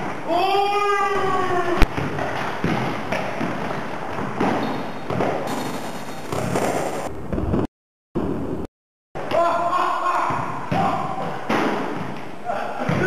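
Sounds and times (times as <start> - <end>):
person shouting: 0.2 - 1.8, 9.3 - 11.3
ball and feet thuds: 1.1 - 8.4, 10.1 - 13.0.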